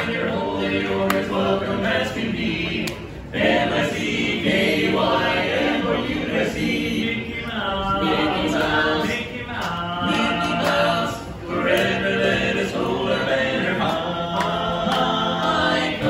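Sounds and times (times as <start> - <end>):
men singing in harmony: 0.0 - 16.0.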